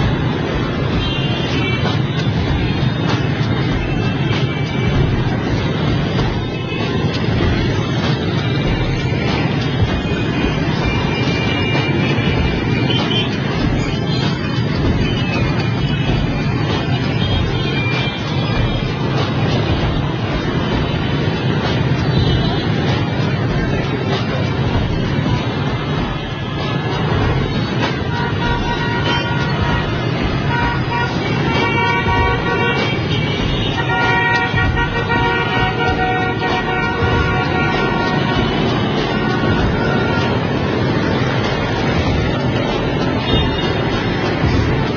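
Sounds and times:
dense motorbike traffic: 0:00.0 - 0:44.9
horn toots: 0:00.0 - 0:44.9.

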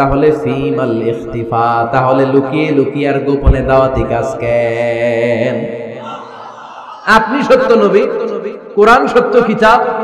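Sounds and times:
man preaching in sing-song cadence: 0:00.0 - 0:10.0.

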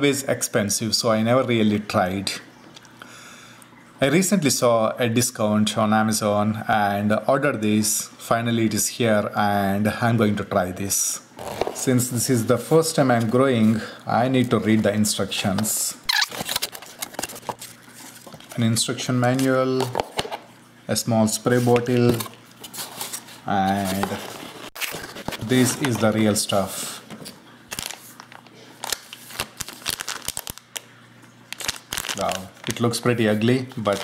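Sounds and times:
paper packaging rustling: 0:14.4 - 0:18.6, 0:21.5 - 0:30.9, 0:31.5 - 0:34.0
plastic bag crinkling: 0:16.1 - 0:18.6, 0:27.2 - 0:34.0
cardboard scraping: 0:21.6 - 0:26.1.

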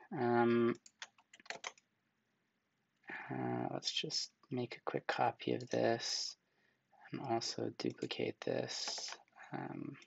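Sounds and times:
keyboard and mouse clicks: 0:00.7 - 0:01.8, 0:05.6 - 0:05.9, 0:07.8 - 0:10.0.

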